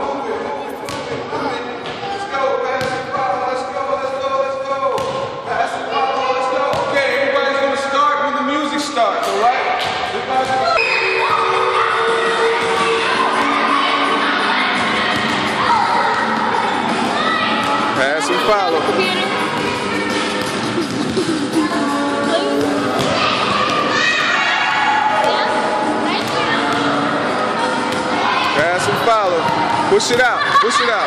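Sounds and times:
ball bouncing on gym floor: 0.8 - 1.2, 2.8 - 3.1, 4.9 - 5.3, 9.2 - 10.8, 15.1 - 15.5, 20.4 - 21.3, 22.6 - 23.8, 26.1 - 26.9, 27.9 - 30.4
children's voices echoing: 10.6 - 31.0.

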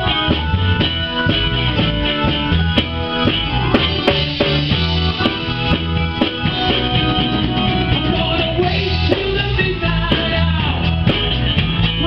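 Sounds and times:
drum kit beat: 0.0 - 12.0
live band playing: 0.0 - 12.0.

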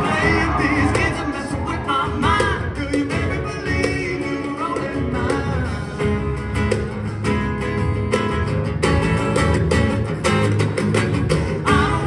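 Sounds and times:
acoustic guitars strummed and picked: 0.0 - 12.0
band accompaniment: 0.0 - 12.0.

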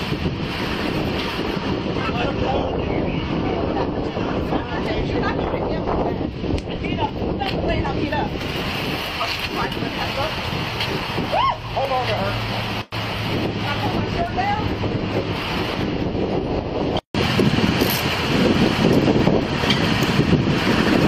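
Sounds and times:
wind noise on microphone: 0.0 - 21.0.

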